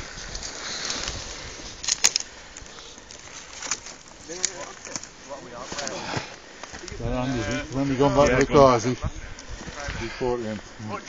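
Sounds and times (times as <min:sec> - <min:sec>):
footsteps crunching through dry grass: 0:00.0 - 0:11.0
sharp twig cracks: 0:00.4 - 0:05.2.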